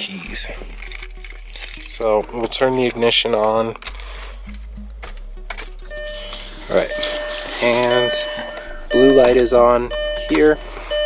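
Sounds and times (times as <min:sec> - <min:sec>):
key jingles: 0:00.3 - 0:06.0
low steady hum: 0:00.3 - 0:11.0.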